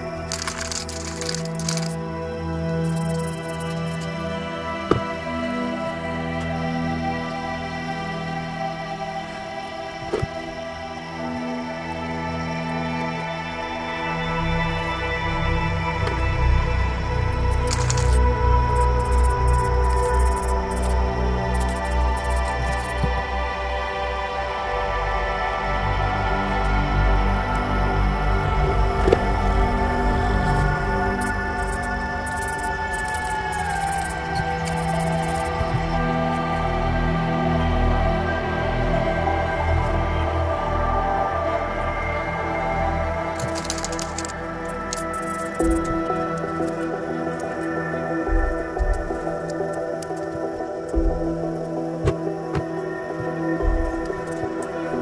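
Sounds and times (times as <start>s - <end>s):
background music with deep bass: 0.0s - 55.0s.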